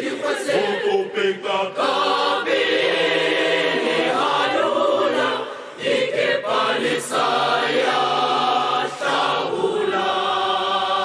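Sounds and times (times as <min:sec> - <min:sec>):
choir singing in harmony: 0:00.0 - 0:11.0.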